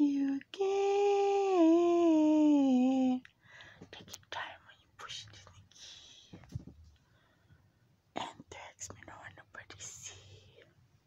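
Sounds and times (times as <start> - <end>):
person whispering: 3.9 - 6.3, 8.2 - 10.7.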